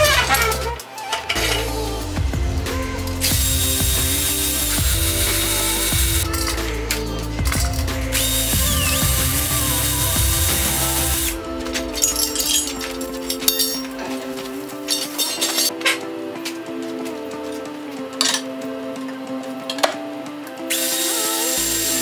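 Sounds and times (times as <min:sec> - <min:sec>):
background music: 0:00.0 - 0:22.0
power tool whirring: 0:03.1 - 0:07.0, 0:08.1 - 0:12.1, 0:20.7 - 0:22.0.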